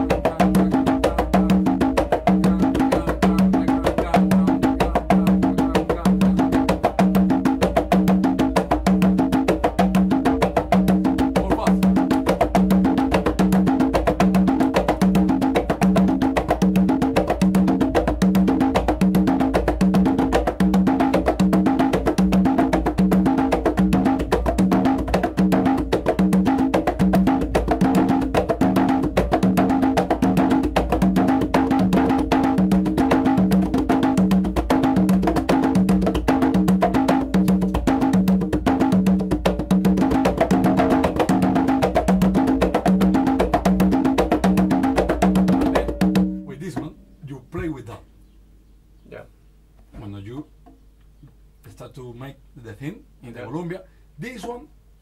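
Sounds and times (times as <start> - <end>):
conga drums played by hand: 0.0 - 47.1.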